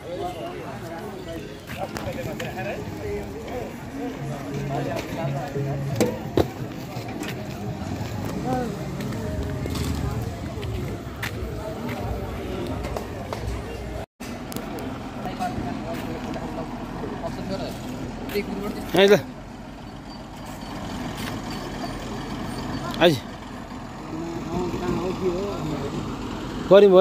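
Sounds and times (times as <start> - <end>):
faint voices: 0.0 - 19.4
vehicle engine running: 1.6 - 27.0.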